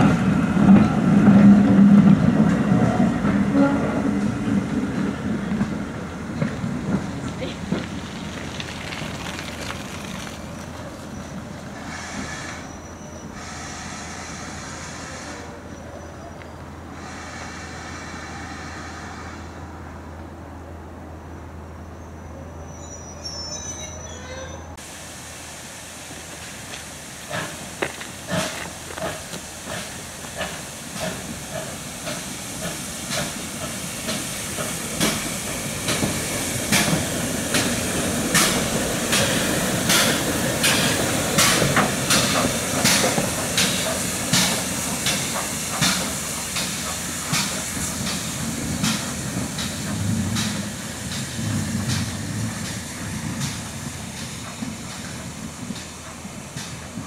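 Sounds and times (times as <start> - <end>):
steam hissing: 5.0 - 15.6, 17.0 - 19.3, 24.8 - 57.0
steam locomotive exhaust beats: 24.8 - 57.0.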